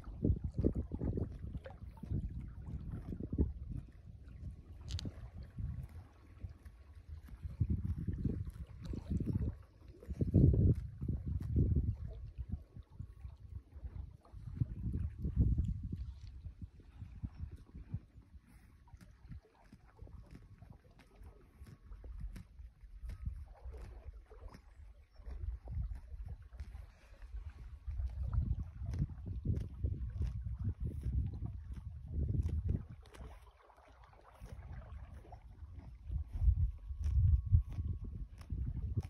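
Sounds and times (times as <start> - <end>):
horse tearing and chewing grass: 0.0 - 39.0
wind rumbling on microphone: 0.0 - 39.0.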